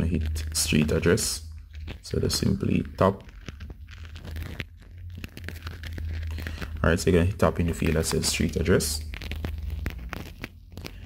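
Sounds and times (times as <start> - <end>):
rustling of handling: 0.0 - 11.0.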